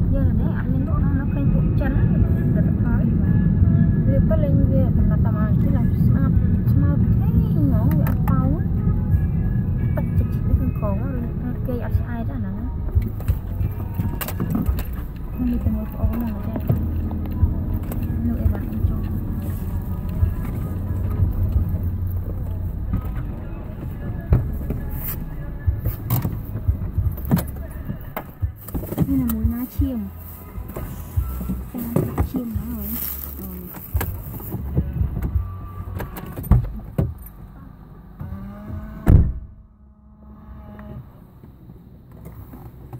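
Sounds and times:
faint voices: 0.0s - 38.3s
music: 0.0s - 38.8s
car engine and road rumble: 0.0s - 42.9s.

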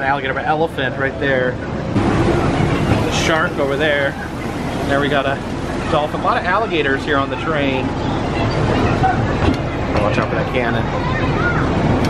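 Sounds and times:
ride train rumbling on track: 0.0s - 12.0s.

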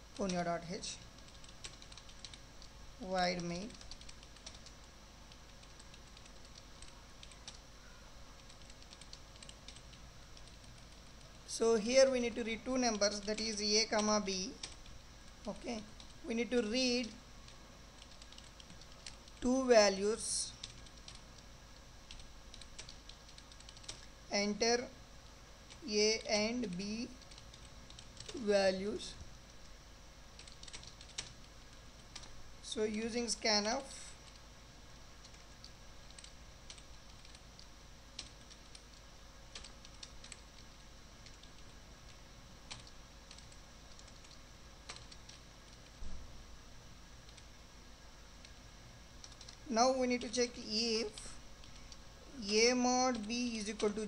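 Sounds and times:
faint keyboard typing: 0.0s - 24.9s, 25.6s - 46.2s, 47.2s - 47.6s, 48.4s - 54.0s
keyboard keystrokes: 30.4s - 31.4s.

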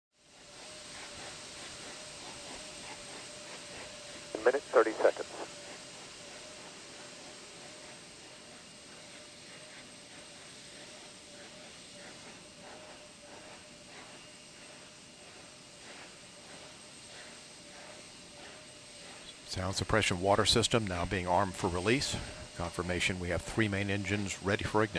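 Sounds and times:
faint steady hiss: 1.0s - 5.8s, 13.4s - 24.9s
thin hum tone: 4.4s - 5.6s.

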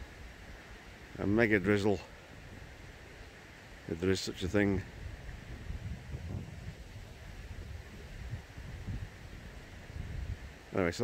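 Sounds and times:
faint steady hiss: 0.0s - 11.0s
wind buffeting microphone: 4.6s - 10.7s.

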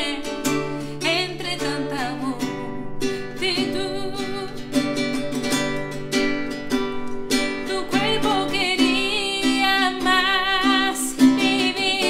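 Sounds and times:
woman singing ballad: 0.0s - 5.4s, 7.5s - 12.0s
classical guitar chords: 0.0s - 12.0s.

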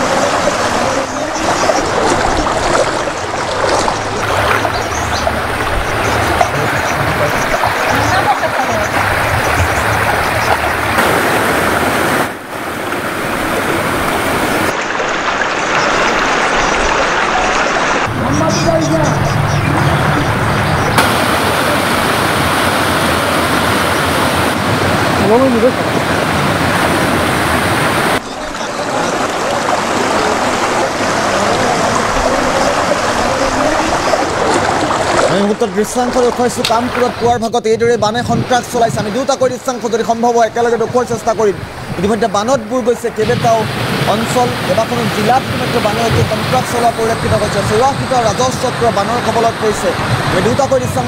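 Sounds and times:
floodwater rushing: 0.0s - 37.7s, 38.4s - 51.0s.

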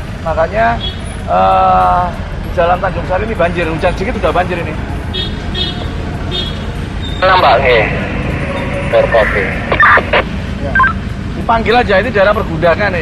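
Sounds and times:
street traffic rumble: 0.0s - 13.0s
voice through two-way radio: 7.2s - 8.1s, 8.9s - 10.3s.

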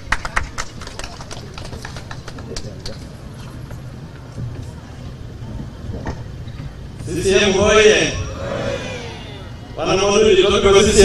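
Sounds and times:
hand claps: 0.0s - 3.1s
crowd background noise: 0.0s - 11.0s.

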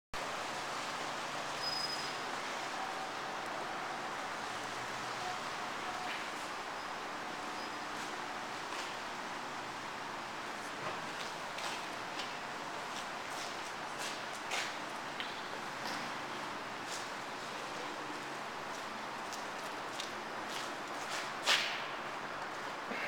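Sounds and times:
room noise hiss: 0.2s - 23.0s.

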